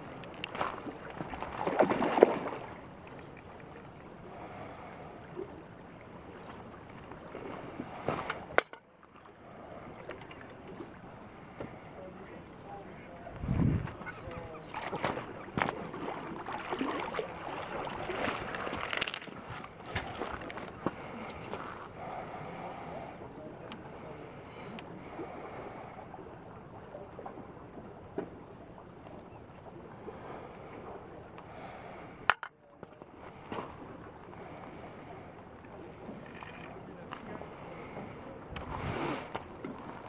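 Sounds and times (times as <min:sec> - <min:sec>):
running water: 0:00.0 - 0:22.2
wind: 0:00.0 - 0:40.0
wind noise on microphone: 0:13.3 - 0:14.4, 0:38.6 - 0:39.2
faint ticks: 0:35.5 - 0:37.2.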